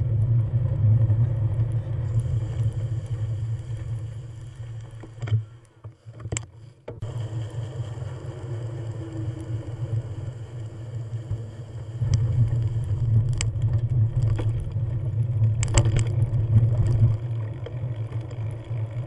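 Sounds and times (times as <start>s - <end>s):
bicycle clicks and rattles: 0.0s - 19.0s
bicycle tyres rolling: 0.0s - 19.0s.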